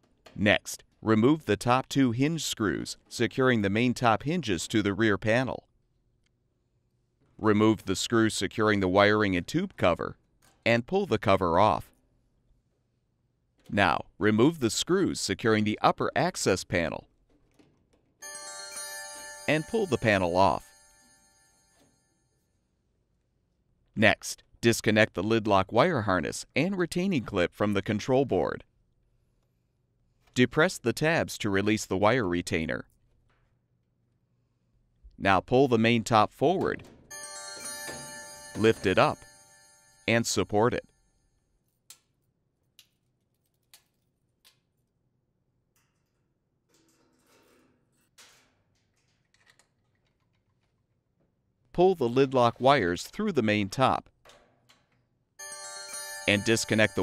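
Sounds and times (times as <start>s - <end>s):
ringing chime: 18.2s - 22.4s, 37.1s - 41.3s, 55.4s - 57.0s.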